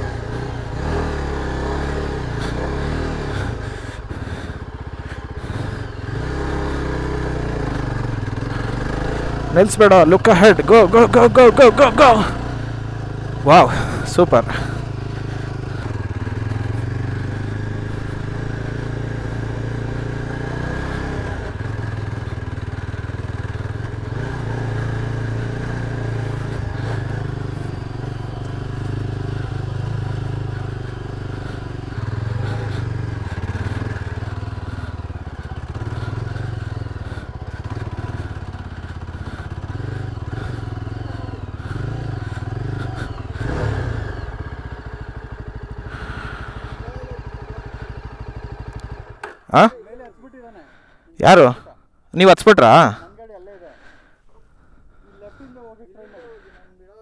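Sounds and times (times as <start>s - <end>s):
motorcycle engine revving: 0.0s - 51.8s, 52.6s - 57.0s.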